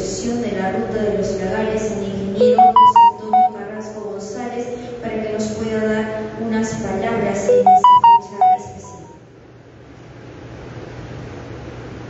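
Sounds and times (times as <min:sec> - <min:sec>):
electronic beeping jingle: 0:02.4 - 0:03.6, 0:07.5 - 0:09.2.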